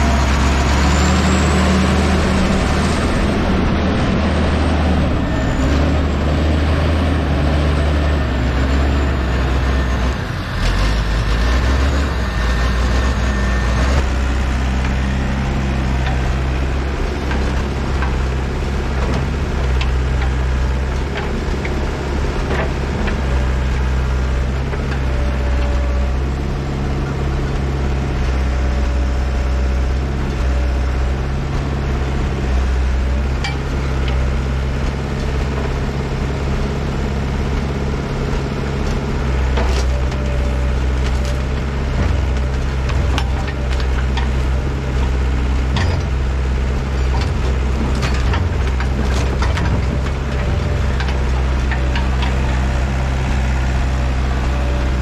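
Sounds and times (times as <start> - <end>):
diesel engines running: 0.0 - 55.0
logs knocking and clunking: 37.4 - 55.0.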